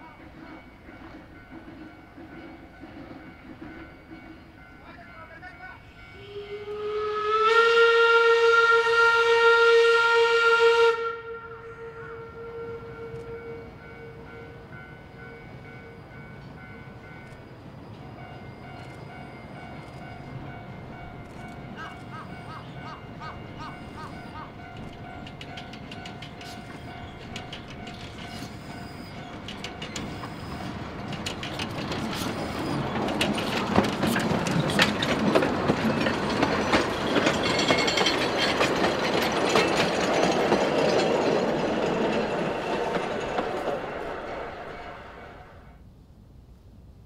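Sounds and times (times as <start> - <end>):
steam train passing: 0.0 - 45.9
wheels clicking over rail joints: 19.8 - 45.0.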